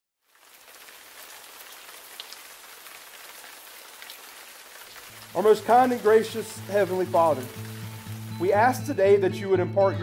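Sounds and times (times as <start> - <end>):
steady rain falling: 0.2 - 8.9
faint water drips: 0.3 - 8.6.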